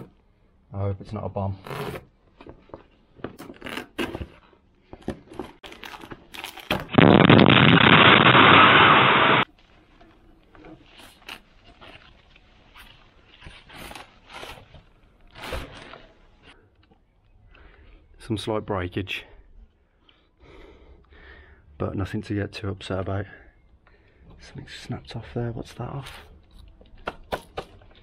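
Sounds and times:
cardboard and plastic rustling: 0:02.4 - 0:07.0, 0:09.5 - 0:16.6
loud continuous noise: 0:07.0 - 0:09.4.

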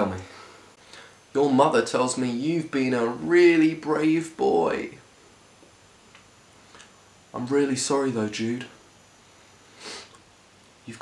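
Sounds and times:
person speaking: 0:01.3 - 0:05.0
nasal sniff: 0:09.7 - 0:10.2.

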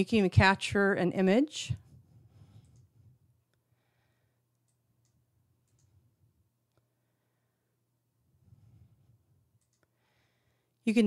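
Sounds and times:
computer mouse click: 0:04.6 - 0:06.0, 0:09.6 - 0:09.9.

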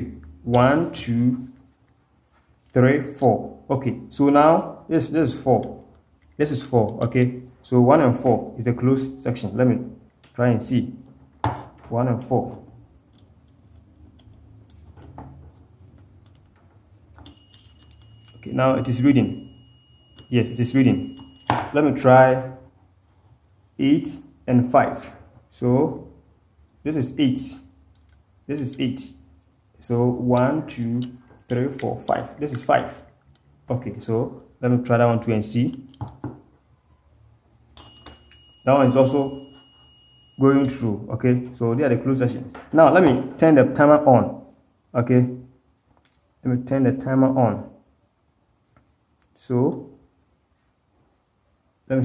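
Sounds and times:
multimeter continuity beep: 0:17.2 - 0:21.7, 0:37.8 - 0:40.8.

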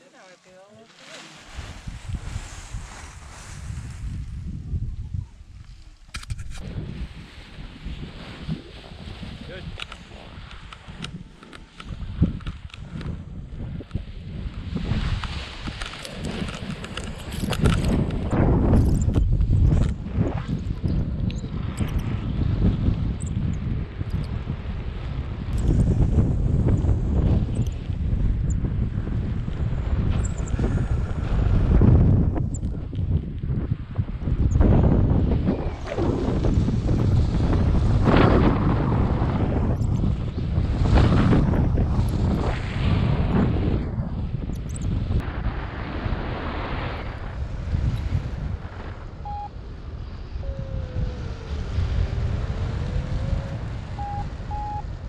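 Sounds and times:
wind rushing over microphone: 0:01.3 - 0:55.0
short high beeps: 0:49.2 - 0:49.5, 0:54.0 - 0:54.8
variometer tone: 0:49.2 - 0:49.6, 0:53.3 - 0:54.9.

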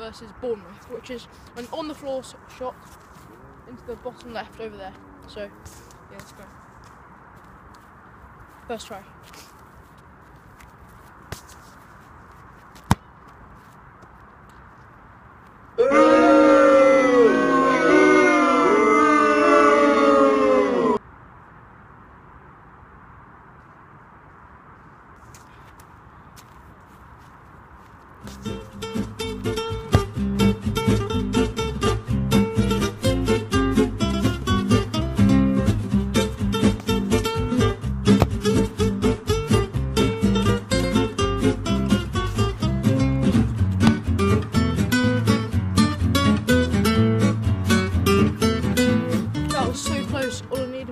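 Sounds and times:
faint outdoor background: 0:00.0 - 0:50.9
strummed acoustic guitar music: 0:28.4 - 0:50.9
sharp knocks: 0:43.8 - 0:44.2.

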